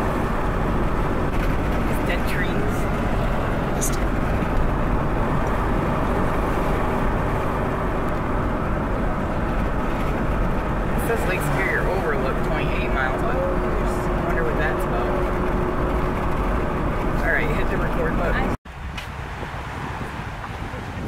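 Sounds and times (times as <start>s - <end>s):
vehicle road and engine noise: 0.0s - 21.0s.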